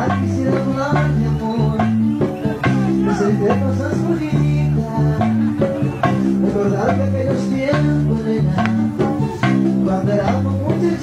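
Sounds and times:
bass: 0.0 - 11.0
guitars: 0.0 - 11.0
percussion beat: 0.0 - 11.0.

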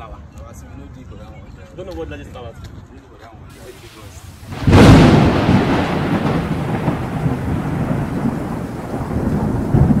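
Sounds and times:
deep thunder-like rumble: 4.4 - 10.0.

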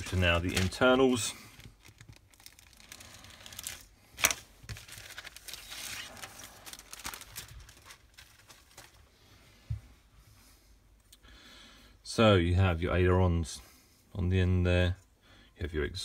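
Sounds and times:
sharp plastic crackle: 0.0 - 9.0
plastic bag crinkling: 0.0 - 9.1.

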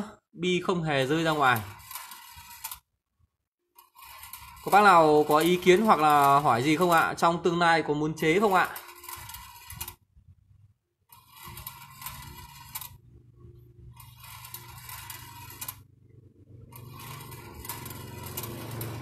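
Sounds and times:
steel balls rattling on wire track: 0.8 - 2.8, 3.8 - 7.3, 8.2 - 10.0, 11.1 - 13.0, 13.9 - 15.9, 16.6 - 19.0
small electric motor humming: 1.1 - 2.8, 3.8 - 7.1, 8.3 - 10.0, 11.1 - 15.9, 16.6 - 19.0.

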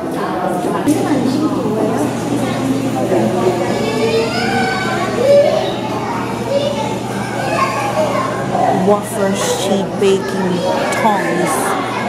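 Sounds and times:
children and visitors chattering: 0.0 - 12.0.

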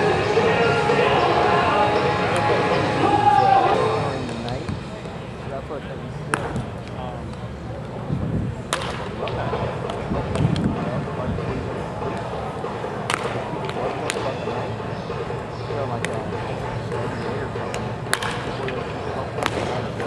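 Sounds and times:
players talking: 0.0 - 20.0
wooden bat hitting balls: 6.3 - 6.7, 8.7 - 10.8, 13.0 - 14.3, 16.0 - 20.0.

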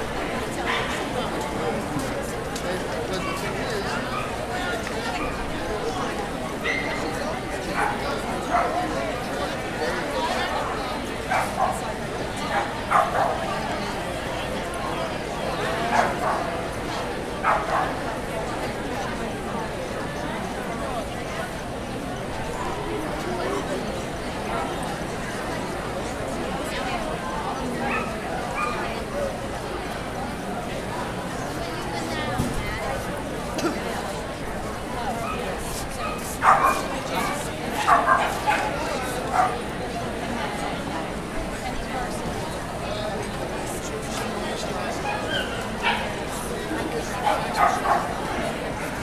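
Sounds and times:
background chatter: 0.0 - 49.0
dog barking: 12.6 - 13.4, 17.4 - 17.9, 36.0 - 36.9, 37.8 - 38.7, 47.3 - 48.1.

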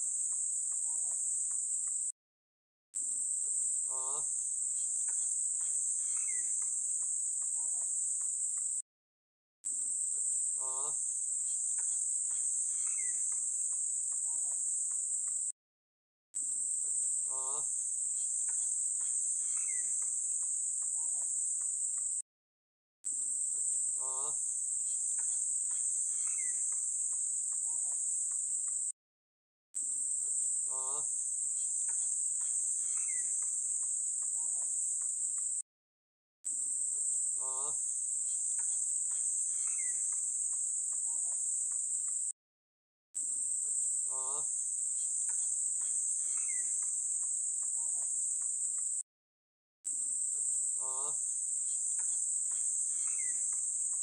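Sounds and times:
insect chorus chirring: 0.0 - 2.1, 3.0 - 8.8, 9.7 - 15.5, 16.4 - 22.2, 23.2 - 29.0, 29.8 - 35.6, 36.5 - 42.4, 43.2 - 49.0, 49.9 - 54.0.

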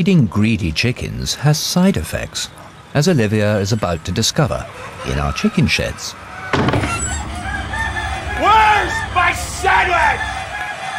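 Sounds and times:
chickens clucking: 2.4 - 10.9.

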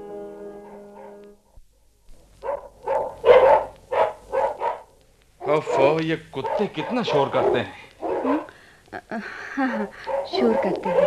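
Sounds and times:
dogs barking: 2.4 - 8.5, 9.8 - 11.0
man's voice: 5.4 - 7.9.

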